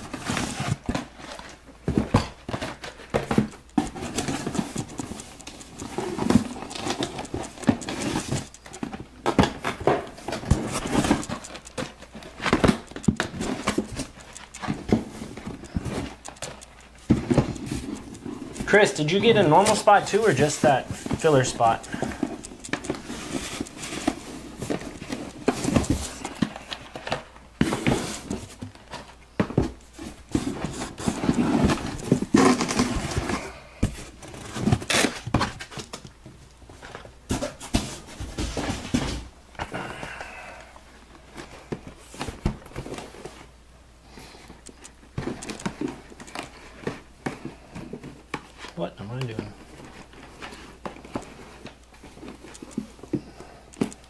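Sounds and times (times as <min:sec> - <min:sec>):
cardboard boxes being handled: 0:00.0 - 0:39.3, 0:40.8 - 0:43.6, 0:44.6 - 0:54.0
plastic wrap crinkling: 0:02.4 - 0:29.2.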